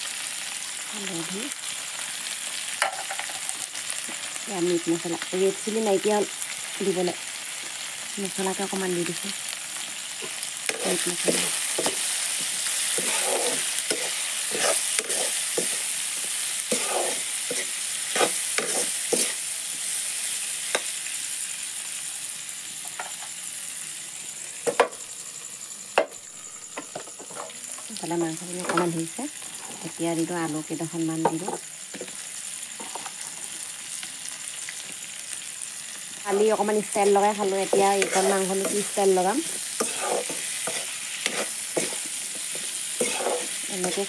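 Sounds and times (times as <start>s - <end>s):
vegetables sizzling in a pan: 0.0s - 44.0s
metal spatula scraping a pan: 10.2s - 20.0s, 37.6s - 44.0s.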